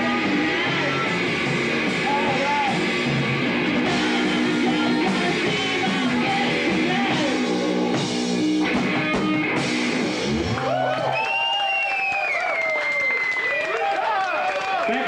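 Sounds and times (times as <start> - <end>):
punk rock band playing: 0.0 - 10.9.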